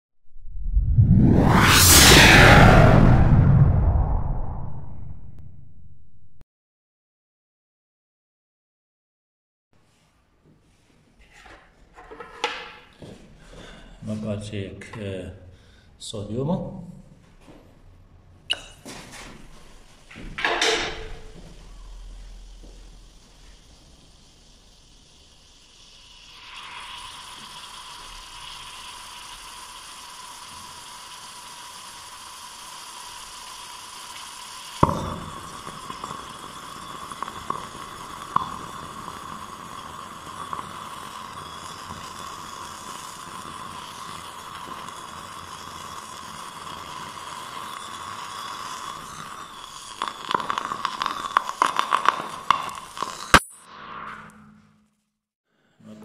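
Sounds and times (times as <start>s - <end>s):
sodium fizzing and hissing in water: 20.8s - 53.6s
crackles and pops: 20.9s - 53.7s
sharp pop: 34.8s - 35.6s.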